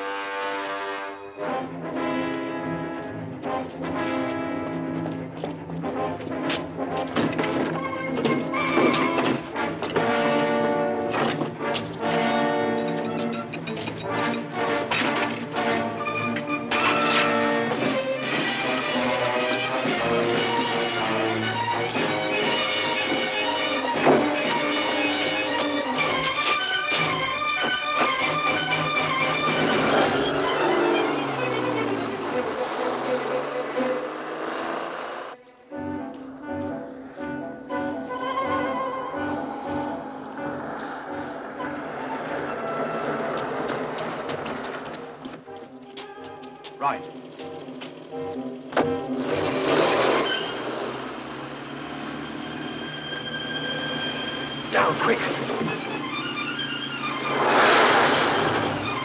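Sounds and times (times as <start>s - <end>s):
orchestral music with brass: 0.0s - 34.2s, 35.4s - 44.3s, 51.7s - 59.0s.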